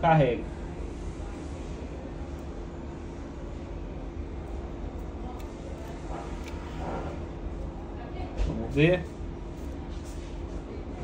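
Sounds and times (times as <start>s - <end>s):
background hum and hiss: 0.0s - 11.0s.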